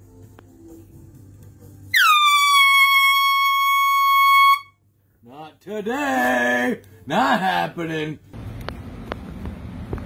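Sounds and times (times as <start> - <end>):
air horn honk: 2.0 - 4.8.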